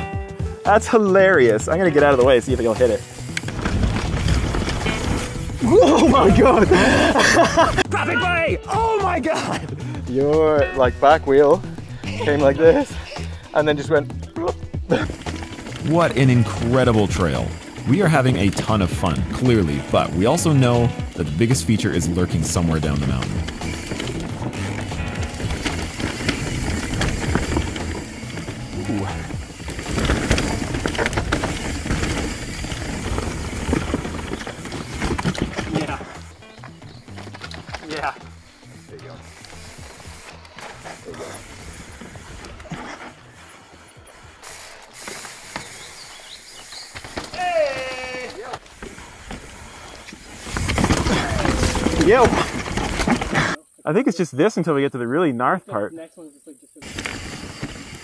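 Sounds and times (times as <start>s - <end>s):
bike rattling over rocks: 1.4s - 7.8s, 10.2s - 53.6s, 56.8s - 58.0s.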